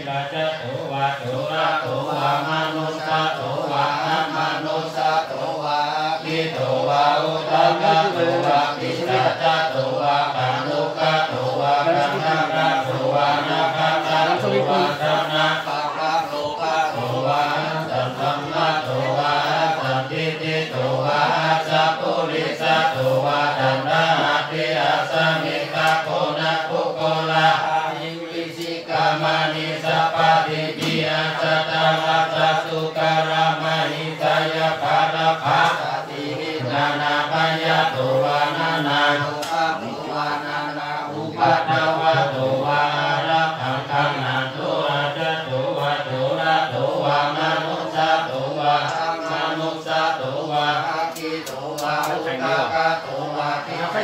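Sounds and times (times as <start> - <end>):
monks chanting in unison: 0.0 - 54.0.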